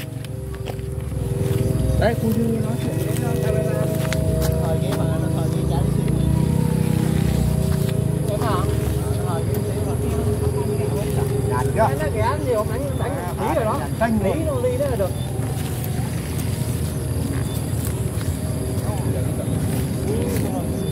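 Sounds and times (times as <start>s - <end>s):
kite flutes droning: 0.0s - 20.9s
low rumble: 0.0s - 20.9s.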